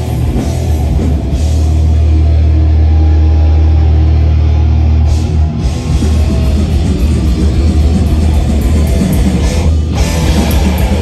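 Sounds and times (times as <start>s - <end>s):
loud thrash metal music: 0.0s - 11.0s.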